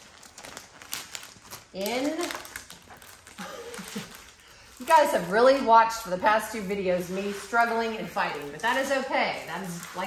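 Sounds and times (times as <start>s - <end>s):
canvas and plastic sleeve rustling: 0.0s - 10.0s.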